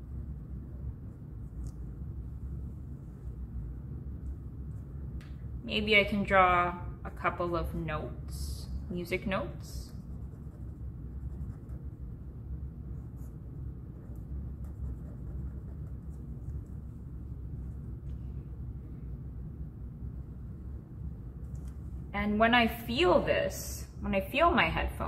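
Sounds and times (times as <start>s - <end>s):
steady low hum: 0.0s - 25.0s
marker scratching on paper: 9.8s - 12.0s, 13.0s - 16.8s.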